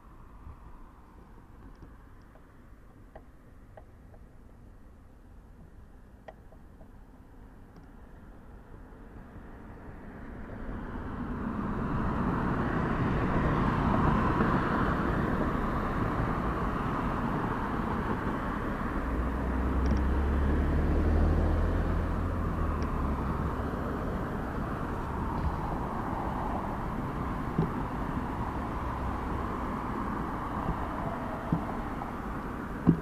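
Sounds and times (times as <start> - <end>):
passing car traffic: 0.0 - 33.0
vehicle engine hum passing by: 9.0 - 33.0.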